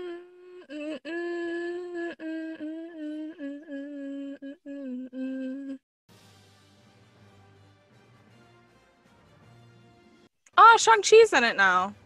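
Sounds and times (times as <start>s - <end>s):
woman humming: 0.0s - 5.9s.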